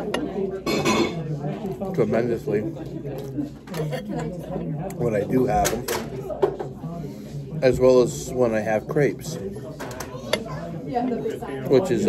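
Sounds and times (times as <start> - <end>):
cutlery clinking on a plate: 0.0 - 1.3.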